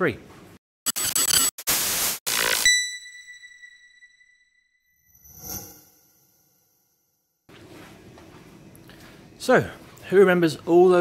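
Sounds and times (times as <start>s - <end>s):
static-like noise bursts: 0.9s - 2.6s
high ringing ping: 2.7s - 6.2s.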